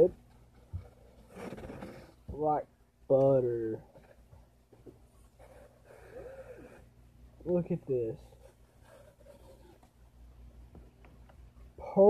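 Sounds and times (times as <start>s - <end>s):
soft breathy nasal sound: 5.4s - 6.9s.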